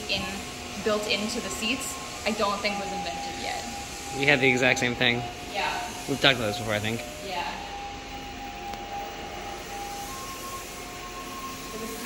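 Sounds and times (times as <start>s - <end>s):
held electronic tone: 0.0s - 12.0s
room hiss: 0.0s - 12.0s.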